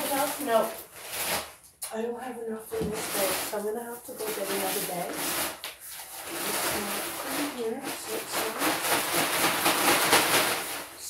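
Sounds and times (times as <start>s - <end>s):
plastic bag crinkling: 0.0s - 1.8s, 2.6s - 11.0s.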